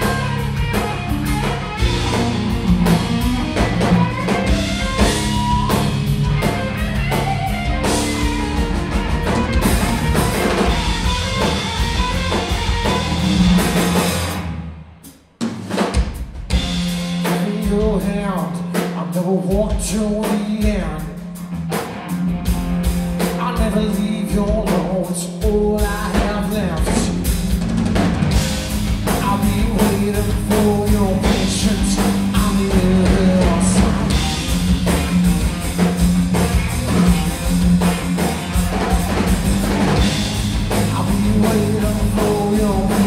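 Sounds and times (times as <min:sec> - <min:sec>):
electric guitar: 0:00.0 - 0:14.9, 0:19.7 - 0:43.0
electric bass: 0:00.0 - 0:15.1, 0:16.5 - 0:43.0
drum kit: 0:00.0 - 0:43.0.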